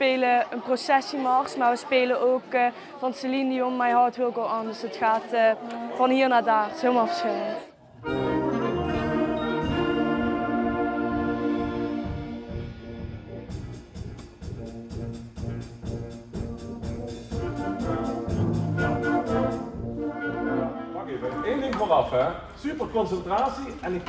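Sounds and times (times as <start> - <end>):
wind band playing: 8.0 - 22.2.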